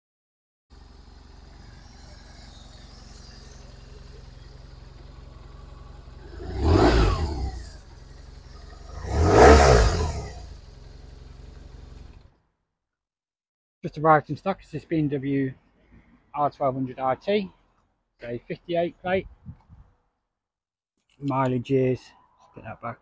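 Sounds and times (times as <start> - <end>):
motorcycle engine revving: 0.7 - 12.3
motorcycle engine idling: 0.7 - 12.4.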